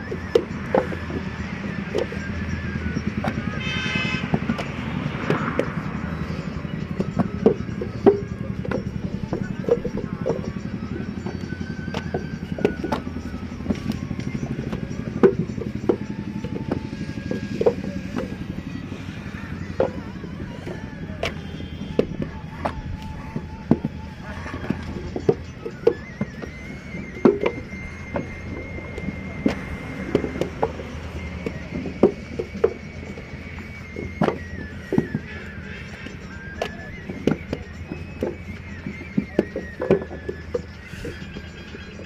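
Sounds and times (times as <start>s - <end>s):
horn sounding: 2.4s - 10.7s, 20.6s - 25.3s.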